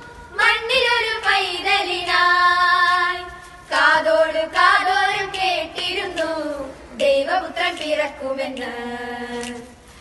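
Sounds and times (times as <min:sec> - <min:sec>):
girls singing a carol: 0:00.0 - 0:09.8.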